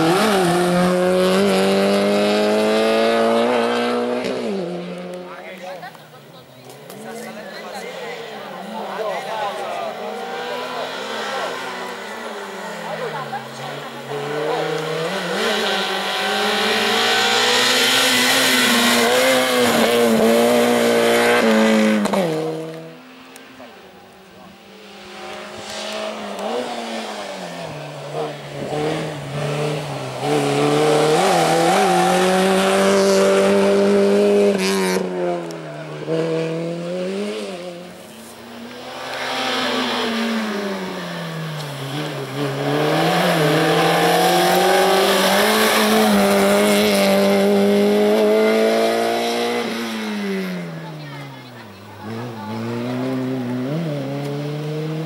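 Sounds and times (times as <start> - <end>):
car engine revving: 0.0 - 55.0.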